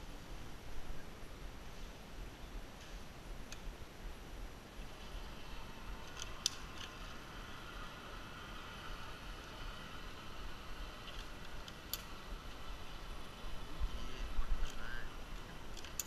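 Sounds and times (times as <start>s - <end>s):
faint wavering high whine: 0.0s - 16.0s
sharp metal clicks: 6.0s - 7.1s, 11.0s - 12.2s, 15.4s - 16.0s.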